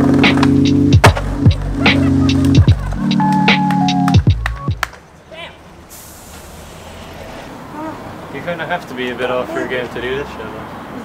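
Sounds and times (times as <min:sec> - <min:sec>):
bus engine rumble: 0:00.0 - 0:11.0
air brakes hissing: 0:05.8 - 0:07.7.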